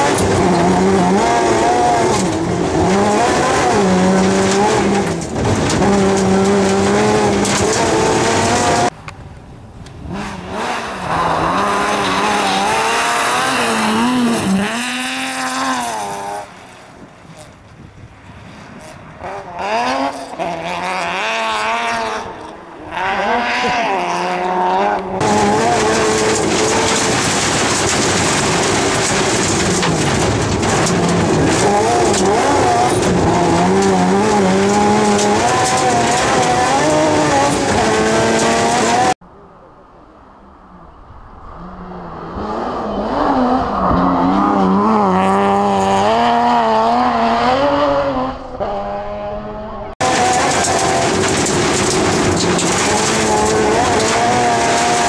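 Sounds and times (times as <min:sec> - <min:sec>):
rally car engine revving: 0:00.0 - 0:09.0, 0:09.9 - 0:17.7, 0:18.5 - 0:39.2, 0:41.4 - 0:55.0.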